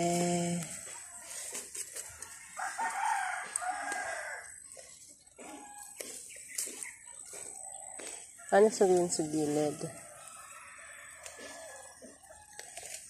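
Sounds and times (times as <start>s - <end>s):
rooster crowing: 2.5s - 4.6s, 9.6s - 12.6s.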